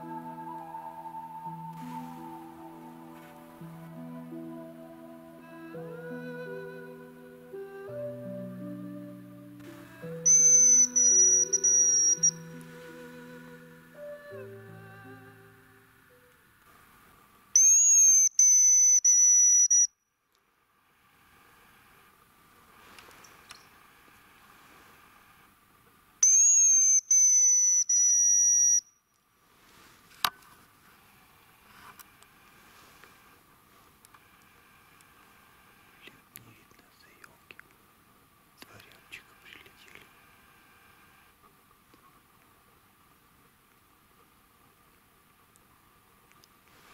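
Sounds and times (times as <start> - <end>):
background music: 0.0 - 16.4
faint forest noise: 0.0 - 46.9
high thin bird decoy whistle: 10.0 - 12.6, 17.6 - 19.9, 26.2 - 28.9
faint whispering voice: 36.0 - 37.6, 38.6 - 40.2.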